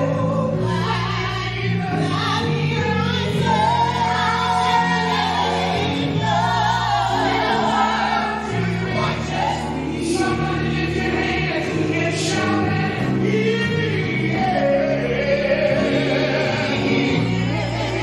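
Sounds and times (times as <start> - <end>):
choir singing through microphones: 0.0 - 18.0
instrumental backing of held notes: 0.0 - 18.0.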